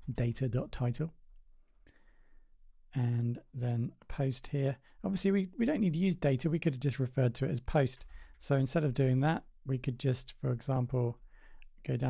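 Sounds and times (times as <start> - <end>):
man speaking: 0.0 - 1.2, 2.9 - 11.2
man breathing in: 1.8 - 2.5, 11.3 - 11.7.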